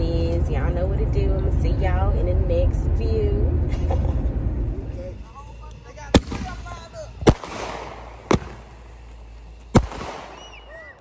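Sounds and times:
crackling hiss of fireworks: 5.2 - 11.0
fireworks bangs: 6.0 - 11.0.

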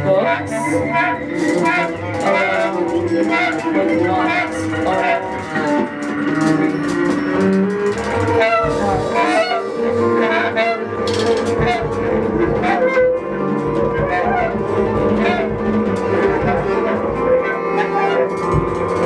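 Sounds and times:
bass: 0.0 - 19.0
bass clarinet long notes: 0.0 - 19.0
drums: 0.0 - 19.0
guitar: 0.0 - 19.0.

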